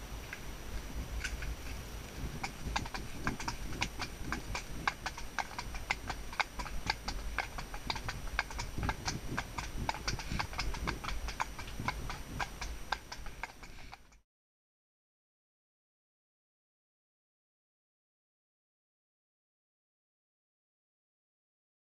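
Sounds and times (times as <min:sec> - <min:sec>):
hooves clip-clopping on tarmac: 0:00.2 - 0:14.2.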